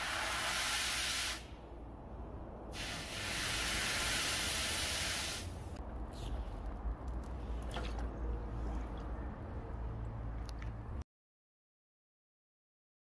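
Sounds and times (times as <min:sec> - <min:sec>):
hot blade hissing in liquid: 0:00.0 - 0:01.4.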